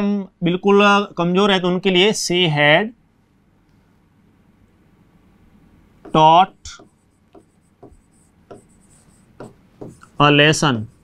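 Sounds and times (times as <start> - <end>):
marker pen squeaking on whiteboard: 6.0 - 11.0.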